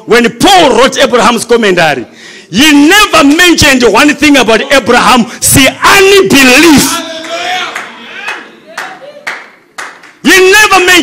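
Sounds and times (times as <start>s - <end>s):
slow hand claps: 7.2s - 10.2s.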